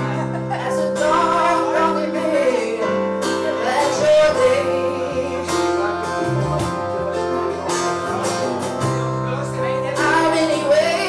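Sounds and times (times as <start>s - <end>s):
woman singing: 0.0s - 6.7s, 9.8s - 11.0s
strummed acoustic guitar: 0.0s - 11.0s.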